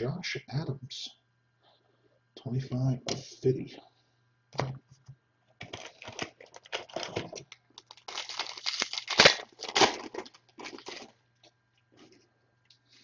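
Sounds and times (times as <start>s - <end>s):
plastic wrapper tearing and crinkling: 5.6s - 11.2s.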